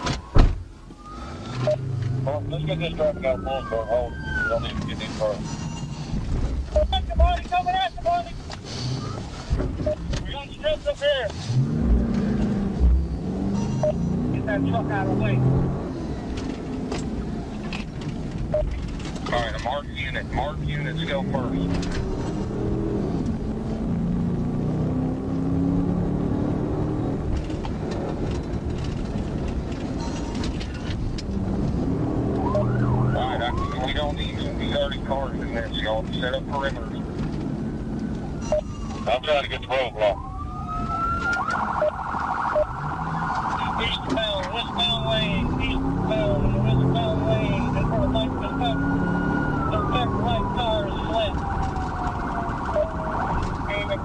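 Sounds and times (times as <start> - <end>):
police sirens wailing: 0.0 - 5.9, 9.0 - 54.0
car engine and road noise: 0.0 - 54.0.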